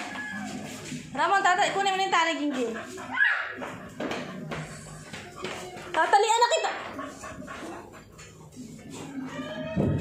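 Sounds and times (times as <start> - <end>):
dog yelping: 3.1 - 3.7.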